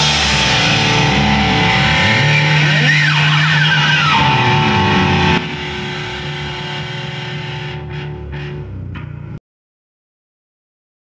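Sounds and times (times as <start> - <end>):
rock band playing live: 0.0 - 8.6
quiet guitar ringing: 0.0 - 9.4.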